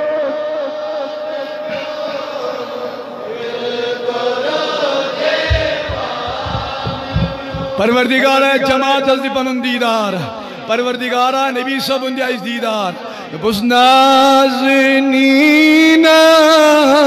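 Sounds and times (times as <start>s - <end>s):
voices chanting a devotional refrain: 0.0s - 10.9s
low thumps: 5.4s - 8.2s.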